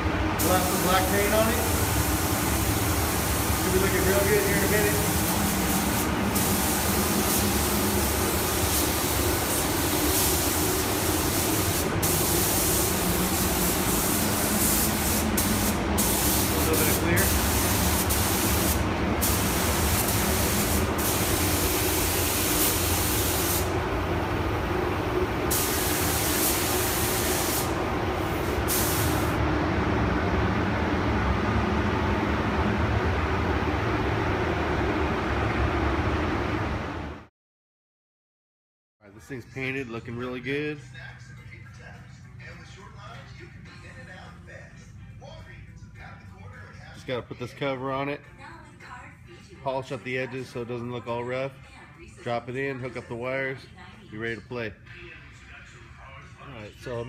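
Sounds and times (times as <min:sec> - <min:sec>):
steady low hum: 0:00.0 - 0:37.2
paint spray gun hissing: 0:00.4 - 0:23.8, 0:25.4 - 0:29.4.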